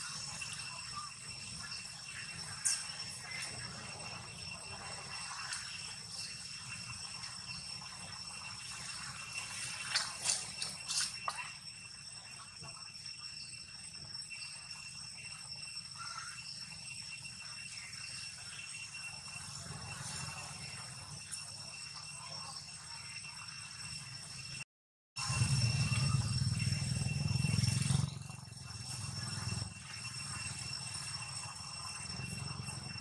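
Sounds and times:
faint high steady tones: 0:00.0 - 0:24.6, 0:25.2 - 0:33.0.

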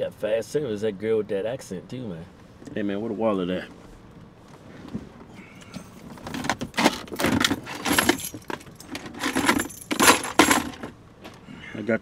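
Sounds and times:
rummaging and rustling: 0:05.8 - 0:11.0
metal chain jingling: 0:07.4 - 0:10.9.

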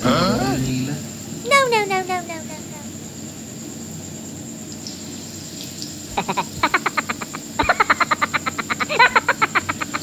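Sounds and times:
frog croaking: 0:01.4 - 0:03.0, 0:04.8 - 0:10.0.

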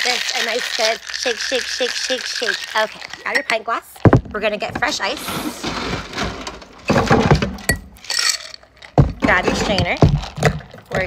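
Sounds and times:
ice cubes clinking in glass: 0:00.0 - 0:03.9, 0:07.7 - 0:09.0
ice rattling against glass: 0:00.0 - 0:11.0.

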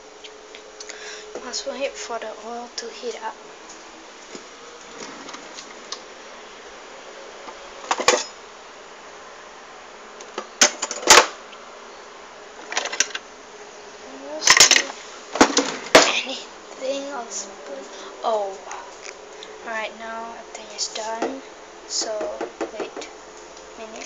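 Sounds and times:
faint steady hiss: 0:00.0 - 0:24.0
kitchen clicks and clatters: 0:14.5 - 0:16.1.

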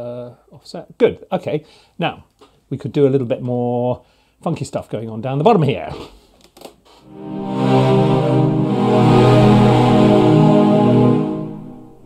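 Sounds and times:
cellos holding low chord: 0:07.1 - 0:12.0.

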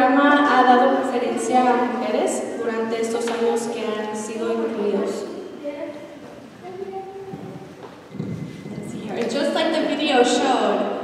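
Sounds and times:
microphone handling rumble: 0:07.2 - 0:09.2.

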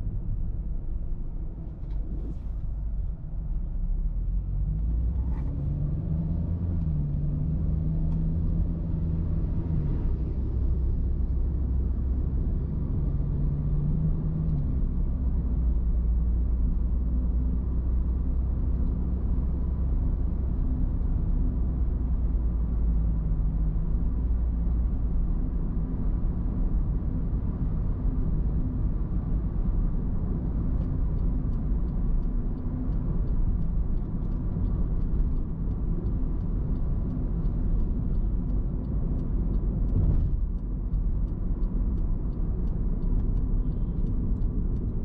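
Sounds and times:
car engine hum: 0:00.0 - 0:45.0
road and tyre rumble: 0:00.0 - 0:45.0.

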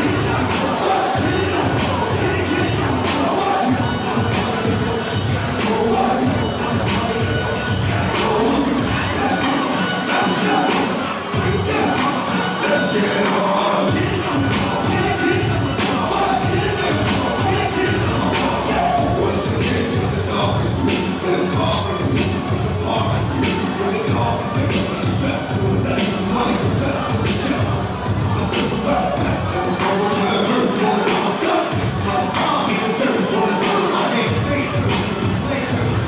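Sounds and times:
audience cheering and shouting: 0:00.0 - 0:36.0
loud dance music: 0:00.0 - 0:36.0.

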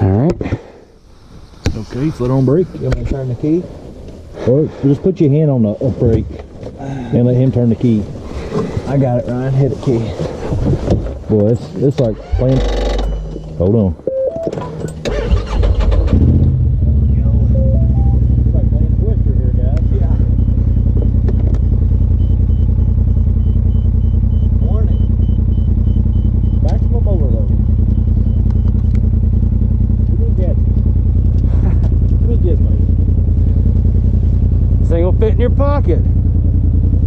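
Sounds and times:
engine starting and idling: 0:14.4 - 0:18.9.

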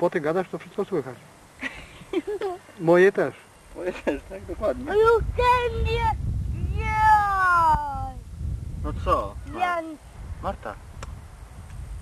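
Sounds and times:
child's high drawn-out call: 0:05.4 - 0:08.2.

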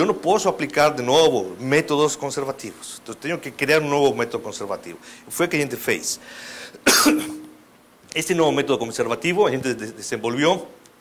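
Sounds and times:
person coughing: 0:06.8 - 0:07.6.

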